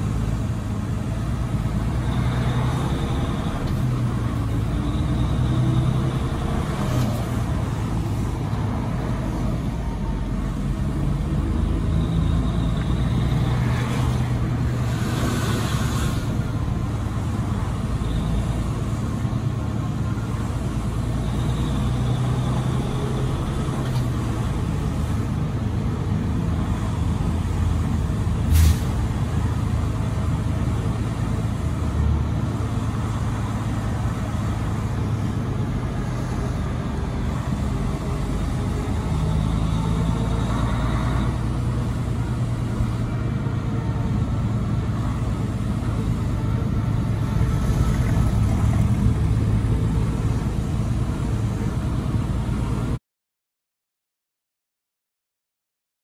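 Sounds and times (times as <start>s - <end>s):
diesel truck engine with road noise: 0.0s - 53.0s.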